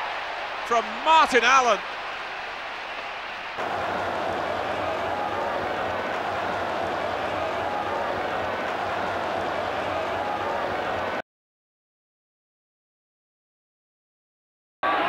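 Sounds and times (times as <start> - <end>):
stadium crowd cheering: 0.0 - 11.2.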